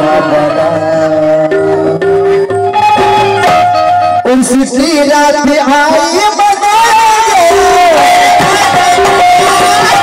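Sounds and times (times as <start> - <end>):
man singing long note: 0.0 - 2.1, 4.6 - 10.0
crowd noise: 0.0 - 10.0.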